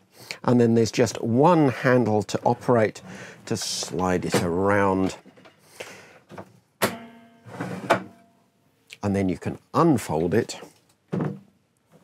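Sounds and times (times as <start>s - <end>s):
ringing hum of sliding table: 6.9s - 8.4s.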